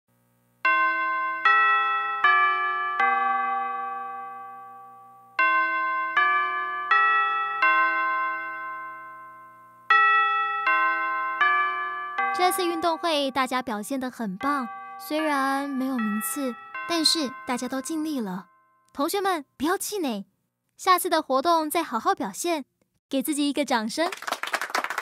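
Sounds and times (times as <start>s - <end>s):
school bell chime: 0.7s - 19.0s.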